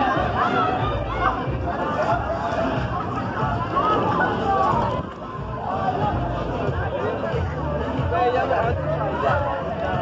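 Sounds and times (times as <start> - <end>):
crowd chattering and calling out: 0.0 - 10.0
music playing: 0.0 - 10.0.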